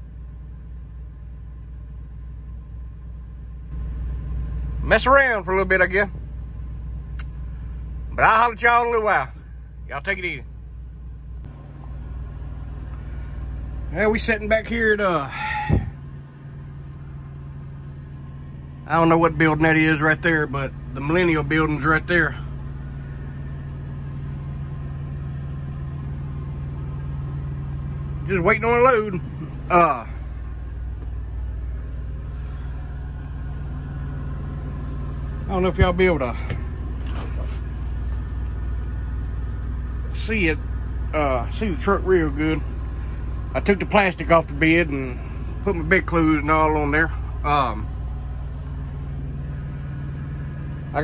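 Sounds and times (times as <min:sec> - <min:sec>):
truck machinery drone: 0:00.0 - 0:51.0.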